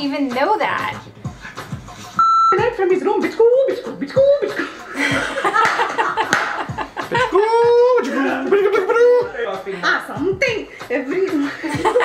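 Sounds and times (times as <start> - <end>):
short electronic bleep: 2.2 - 2.6.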